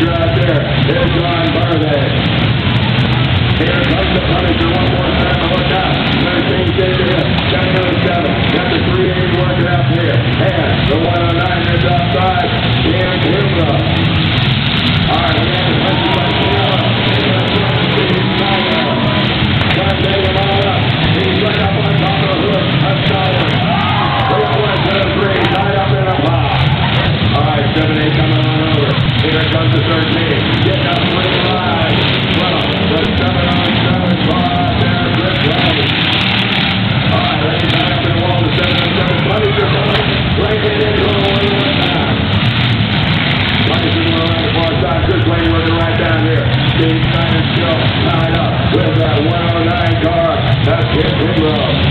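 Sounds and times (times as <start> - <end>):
announcer speaking: 0.0 - 2.3, 3.6 - 14.0, 15.0 - 42.3, 43.6 - 51.9
car engines rumbling: 0.0 - 51.9
crowd voices: 0.0 - 51.9.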